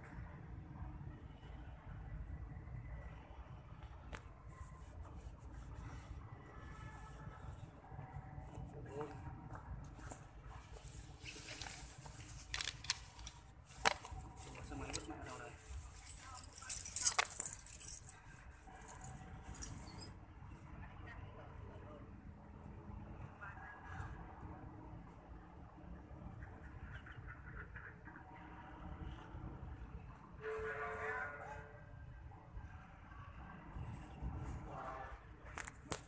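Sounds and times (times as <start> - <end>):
faint distant voices: 13.9 - 25.3
jingling rattle: 14.4 - 20.1.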